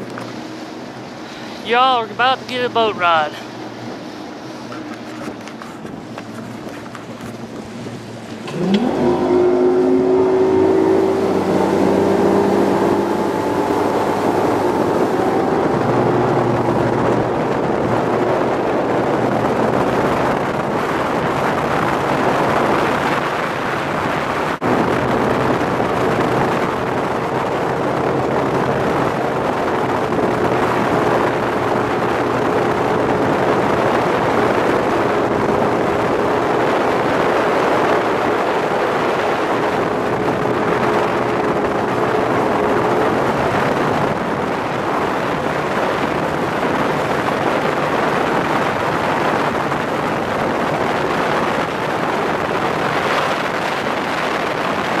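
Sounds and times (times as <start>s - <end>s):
outboard motor accelerating: 0.0s - 55.0s
wind and water rushing: 0.0s - 55.0s.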